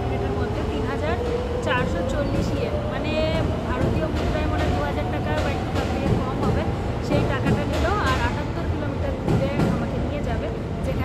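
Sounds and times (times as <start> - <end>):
woman talking: 0.0 - 11.0.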